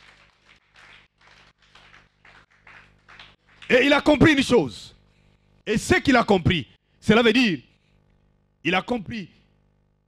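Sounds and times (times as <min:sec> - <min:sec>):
faint applause: 0:00.0 - 0:03.9.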